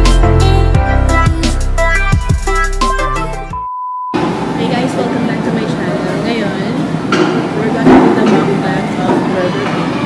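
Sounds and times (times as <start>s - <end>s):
upbeat electronic music: 0.0s - 3.7s
high beep: 3.6s - 4.2s
murmur of voices: 4.5s - 10.0s.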